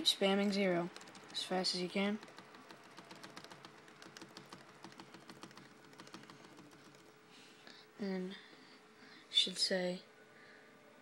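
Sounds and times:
laptop key tapped rapidly: 0:00.5 - 0:07.2.

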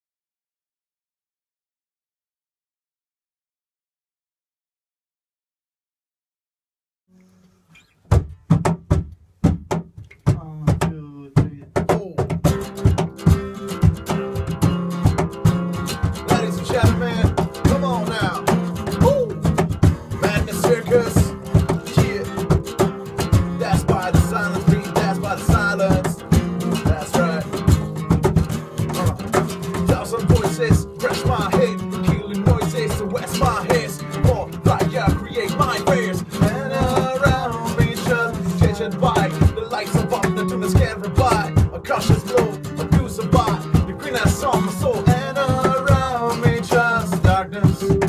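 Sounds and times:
acoustic guitar: 0:07.1 - 0:48.0.

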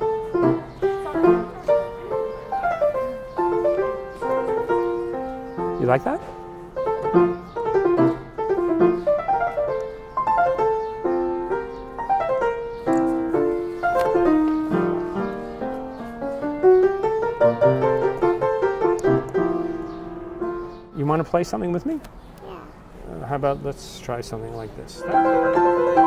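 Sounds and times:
upright piano melody: 0:00.0 - 0:21.8, 0:25.0 - 0:26.0.

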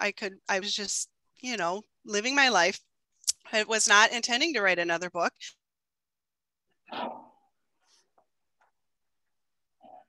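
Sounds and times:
garbled video call audio: 0:00.0 - 0:05.6, 0:06.7 - 0:10.0.

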